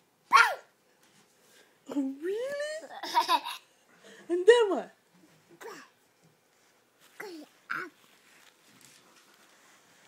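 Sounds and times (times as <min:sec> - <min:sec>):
toddler laughing: 0:02.9 - 0:03.7.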